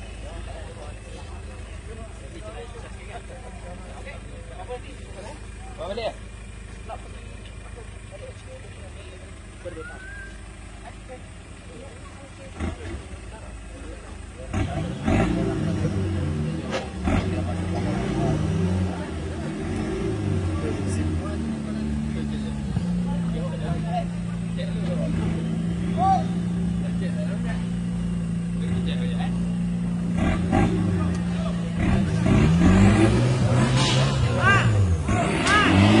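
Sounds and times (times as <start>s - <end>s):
off-road vehicle engine revving: 0.0s - 36.0s.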